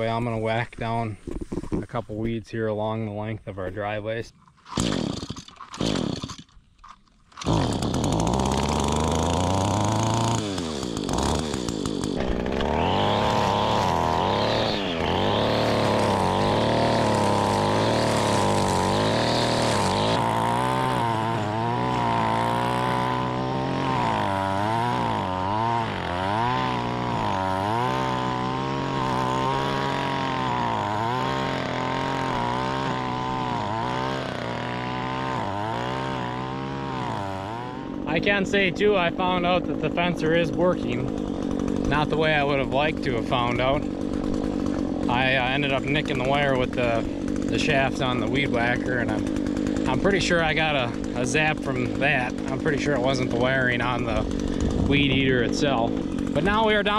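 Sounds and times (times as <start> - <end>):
string trimmer pull-start: 1.2 - 1.9, 4.4 - 56.9
string trimmer engine revving: 4.6 - 56.9.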